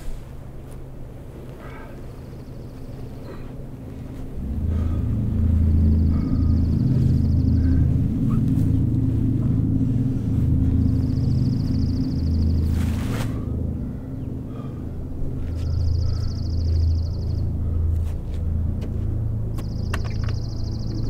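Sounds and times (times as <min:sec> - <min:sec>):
deep low rumble: 0:00.0 - 0:21.0.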